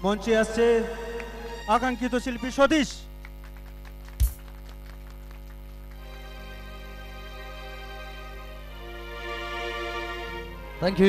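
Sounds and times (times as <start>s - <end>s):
mains hum through speakers: 0.0s - 11.0s
microphone thump: 4.2s - 4.5s.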